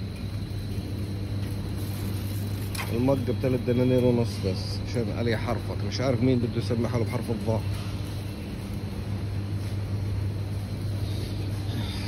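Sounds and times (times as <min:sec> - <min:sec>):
ventilation and refrigeration hum: 0:00.0 - 0:12.0.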